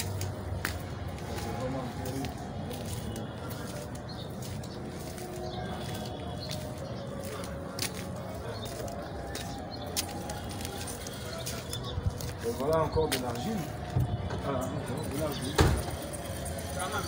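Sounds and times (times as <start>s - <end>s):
footsteps outdoors: 0.0s - 17.0s
street ambience rumble: 0.0s - 17.0s.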